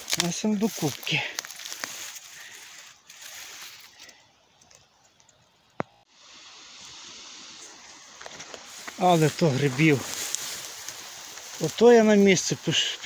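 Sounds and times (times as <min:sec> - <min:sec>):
rustling of grass and leaves: 0:00.0 - 0:13.0.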